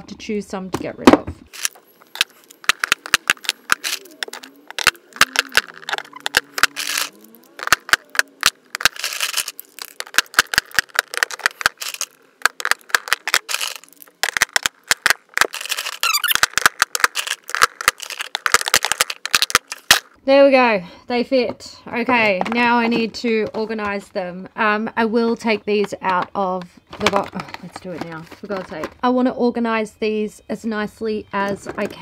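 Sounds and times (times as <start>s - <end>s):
plastic cases clicking and clattering: 1.5s - 20.2s, 25.4s - 29.0s.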